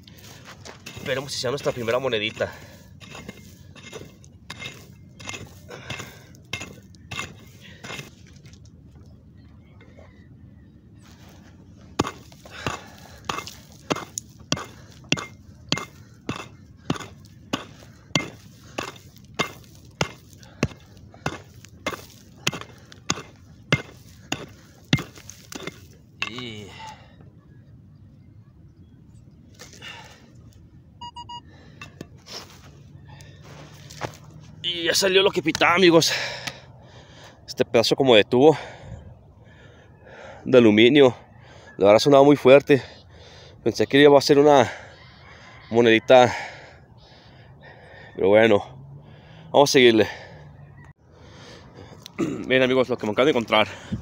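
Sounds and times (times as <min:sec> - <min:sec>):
pick hacking into stony soil: 0:00.1 - 0:08.2, 0:11.9 - 0:26.7
metal detector beeps: 0:31.0 - 0:31.5.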